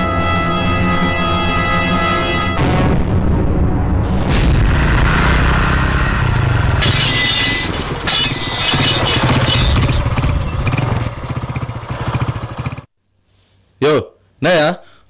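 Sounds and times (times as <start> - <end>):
motorcycle engine: 4.6 - 12.9.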